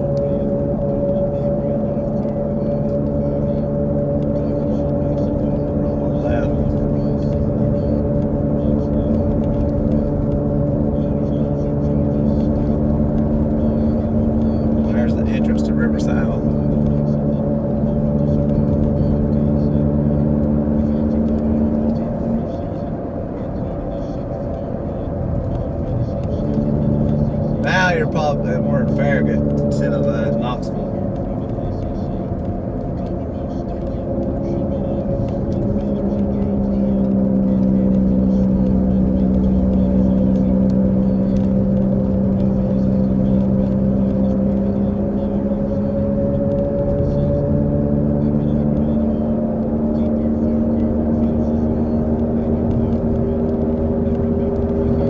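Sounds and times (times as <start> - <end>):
car cabin drone: 0.0 - 55.0.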